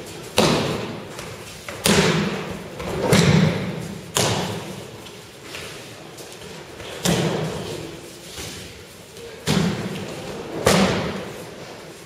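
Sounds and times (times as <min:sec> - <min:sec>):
heavy thuds and slaps on mats: 0:00.3 - 0:04.8, 0:06.8 - 0:07.7, 0:09.4 - 0:11.3.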